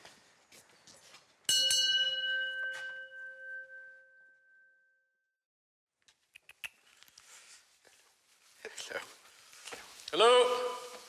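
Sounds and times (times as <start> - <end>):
small metal bell ringing: 1.5 - 5.0.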